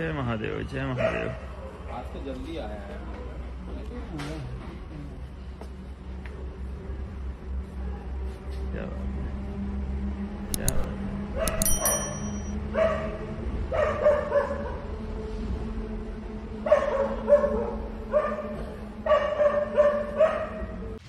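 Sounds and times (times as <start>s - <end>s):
dogs barking: 0.9s - 1.9s, 12.7s - 14.9s, 16.6s - 21.0s.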